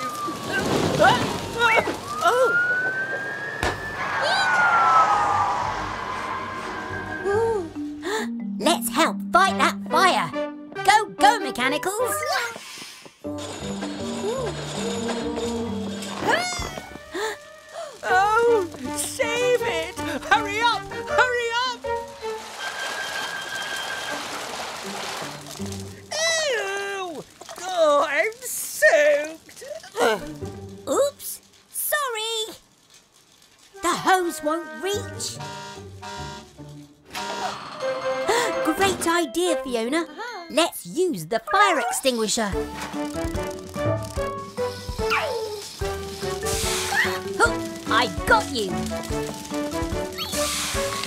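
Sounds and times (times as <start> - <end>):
cartoon siren wailing: 2.0 - 7.7
cartoon water spray hiss: 12.4 - 13.2, 44.1 - 51.0.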